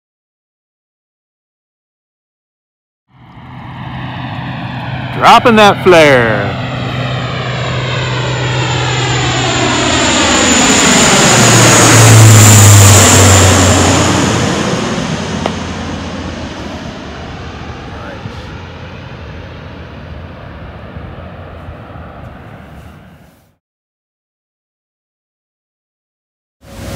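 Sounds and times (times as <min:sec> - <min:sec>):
propeller plane flying overhead: 0:03.1 - 0:23.6, 0:26.6 - 0:26.9.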